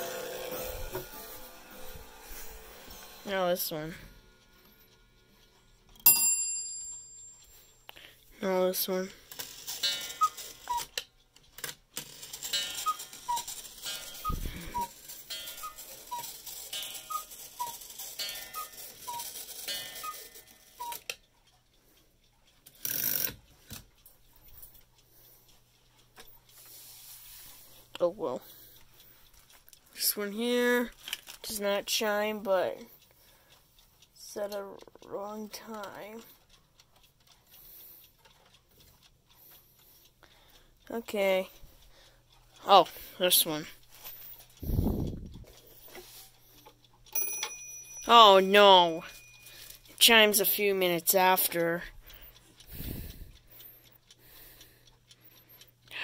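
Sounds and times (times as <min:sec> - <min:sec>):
cuckoo clock calling: 0:00.0 - 0:07.7, 0:08.4 - 0:21.6, 0:30.0 - 0:55.8.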